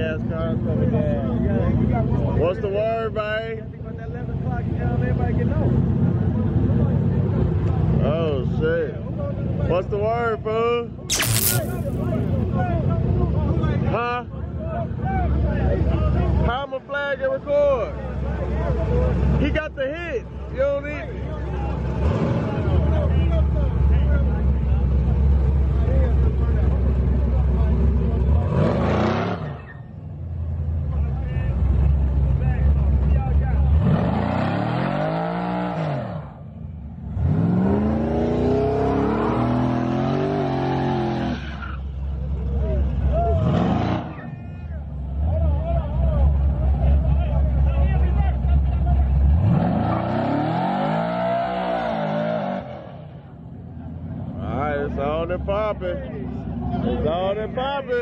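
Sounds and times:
engine idling rumble: 44.4s - 49.4s
car engine revving: 49.1s - 53.4s.

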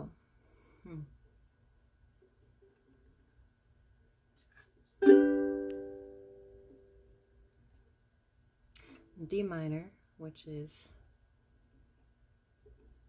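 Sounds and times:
ukulele chord strummed: 5.0s - 7.0s.

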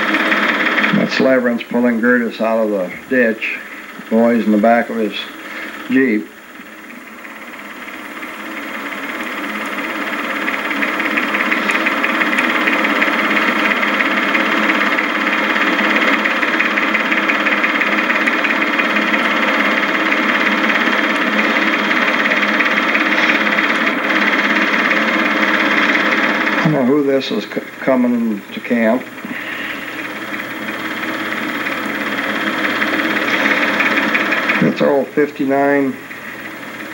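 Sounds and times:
film projector whirring: 0.0s - 36.9s
fluttering film mechanism clatter: 5.3s - 26.7s, 28.4s - 34.9s.

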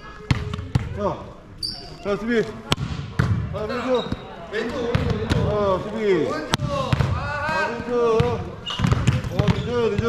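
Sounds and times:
volleyball smacks: 2.7s - 3.5s, 6.5s - 10.0s.

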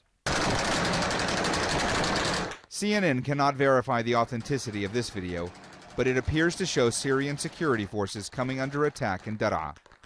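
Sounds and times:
automatic gunfire: 0.2s - 2.6s, 4.2s - 10.0s.

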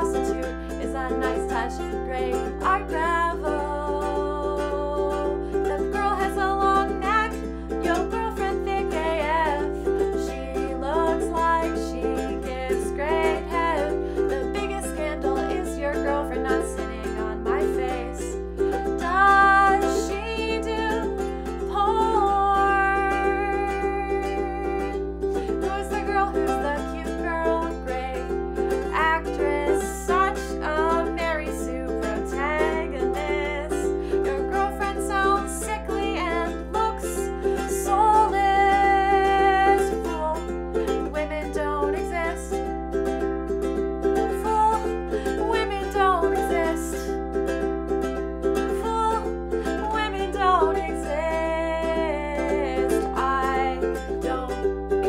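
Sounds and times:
ukulele strummed chords: 0.0s - 55.0s
woman singing: 0.0s - 55.0s.

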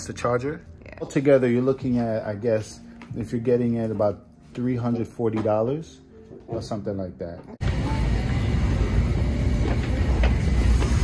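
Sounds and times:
subway train rumbling: 7.6s - 11.0s.

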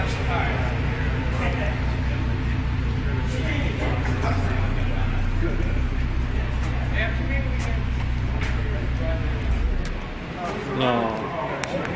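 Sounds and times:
car engine idling: 0.0s - 11.9s.

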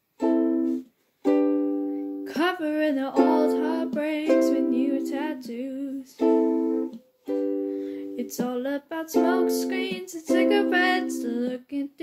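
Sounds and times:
ukulele strumming chords: 0.1s - 11.7s.

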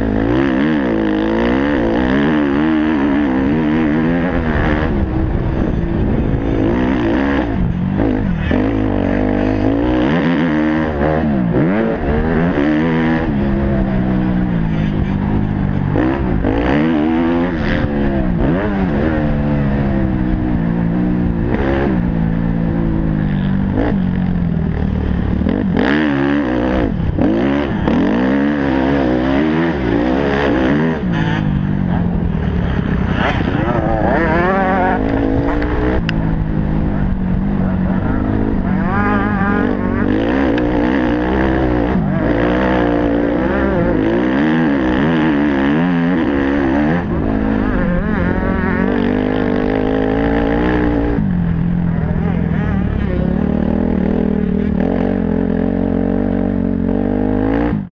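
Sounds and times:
motocross bike engine revving: 0.0s - 57.9s.

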